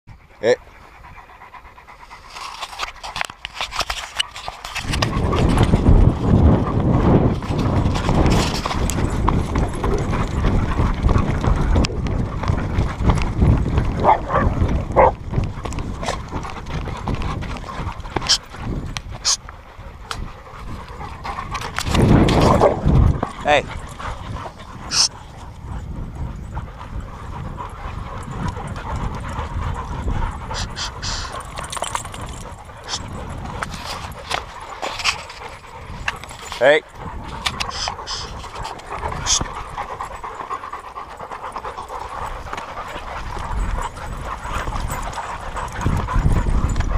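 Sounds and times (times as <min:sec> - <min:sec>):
paws and footsteps on dirt: 0:00.1 - 0:46.9.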